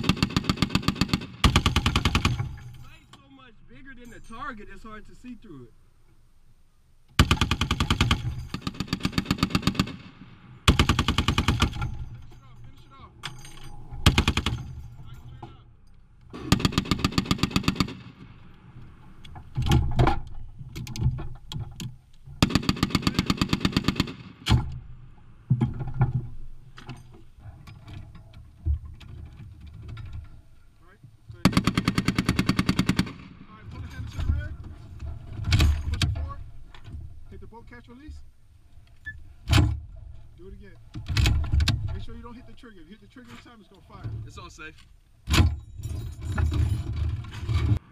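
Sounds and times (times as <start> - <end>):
heavy machine gun bursts: 0.0 - 2.8, 7.2 - 10.1, 10.7 - 12.1, 14.0 - 14.8, 16.4 - 18.1, 22.4 - 24.3, 31.4 - 33.3.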